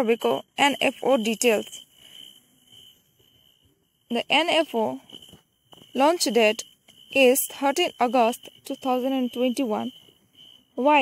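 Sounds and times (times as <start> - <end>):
thin high-pitched tone: 0.0 - 11.0.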